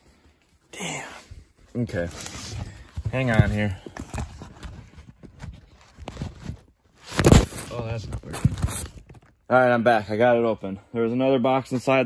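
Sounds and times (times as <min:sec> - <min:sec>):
cardboard box knocks and scrapes: 0:02.4 - 0:09.1.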